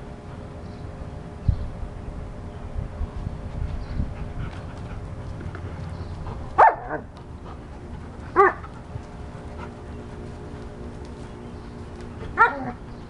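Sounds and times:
dog barking: 6.6 - 7.0, 8.4 - 8.6, 12.4 - 12.8.

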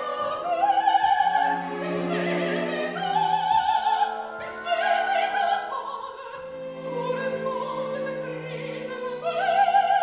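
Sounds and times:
operatic soprano singing: 0.0 - 10.0
orchestral accompaniment: 0.0 - 10.0.

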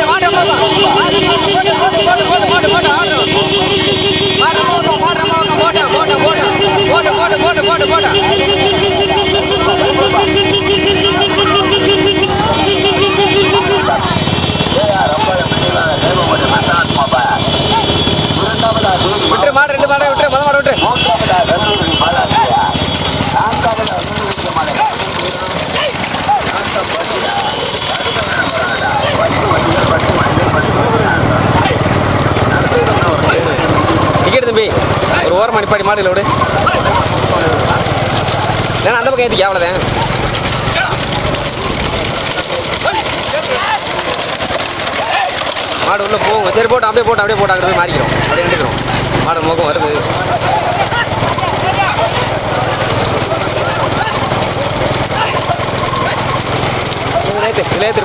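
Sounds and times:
men shouting: 0.0 - 58.0
vehicle engines running: 0.0 - 58.0.

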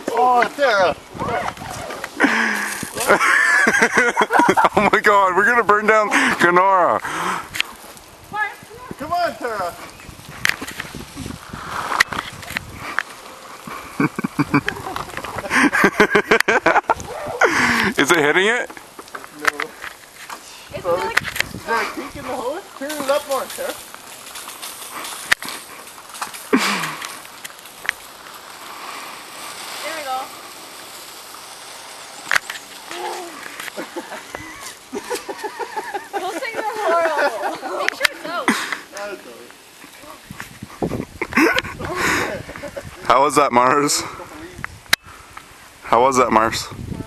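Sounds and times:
outdoor hiss: 0.0 - 47.0
people laughing and talking: 0.2 - 7.5, 13.6 - 18.6, 20.7 - 22.8, 33.0 - 44.3.

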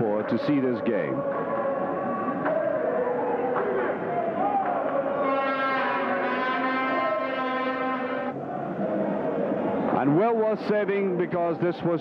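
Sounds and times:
steady background noise: 0.0 - 12.0
horn long steady note: 5.1 - 8.4.

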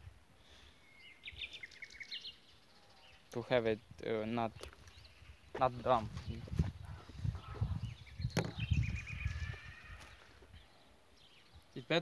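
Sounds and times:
bird chirping: 0.4 - 12.0.

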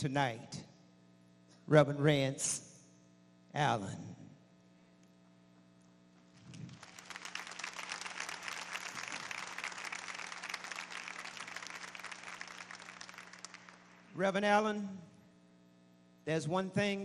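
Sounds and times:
electrical hum: 0.0 - 17.0
audience applauding: 6.4 - 14.2.

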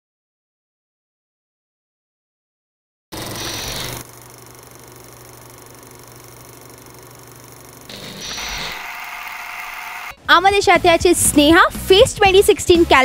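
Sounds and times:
mechanical whirr: 3.2 - 10.2.

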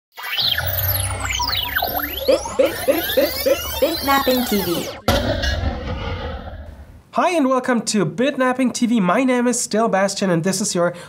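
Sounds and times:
short electronic blips: 0.1 - 7.0
synthesized tones sweeping: 0.1 - 7.0
low drone: 0.6 - 7.0.

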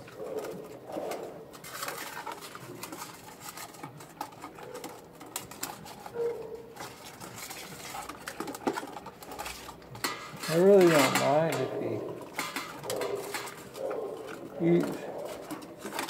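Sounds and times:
dog chewing and licking: 11.8 - 16.0.

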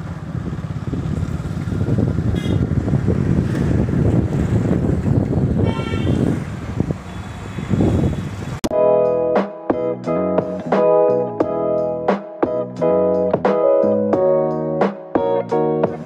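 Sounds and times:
street traffic: 0.0 - 8.7
wind rumbling on microphone: 0.0 - 8.7
vehicle horn toots: 2.3 - 2.8, 5.6 - 8.4.

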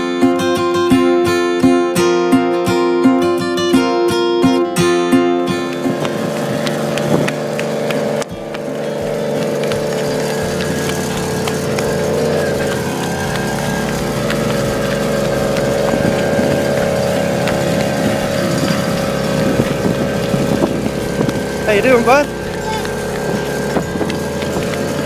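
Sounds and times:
small engine running steadily: 3.7 - 25.0.

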